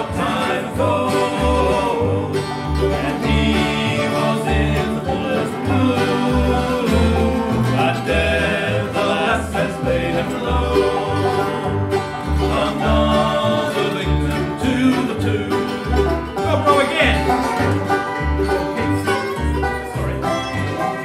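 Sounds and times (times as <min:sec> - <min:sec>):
bluegrass band playing: 0:00.0 - 0:21.0
upright bass: 0:00.0 - 0:21.0.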